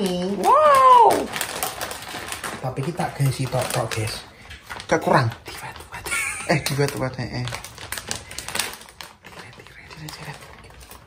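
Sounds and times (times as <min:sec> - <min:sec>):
rapid crinkling and crackles: 0:00.0 - 0:11.0.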